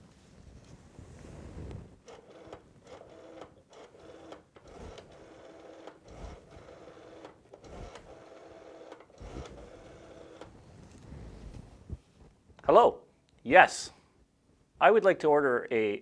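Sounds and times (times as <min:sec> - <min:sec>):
rotary telephone dial whirring: 0:02.0 - 0:10.5.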